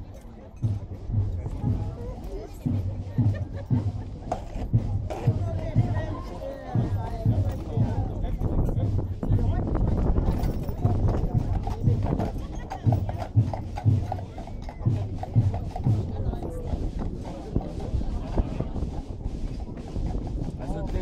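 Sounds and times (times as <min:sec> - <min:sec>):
crowd chatter: 0:00.0 - 0:21.0
horse hooves clip-clopping on asphalt: 0:04.3 - 0:21.0.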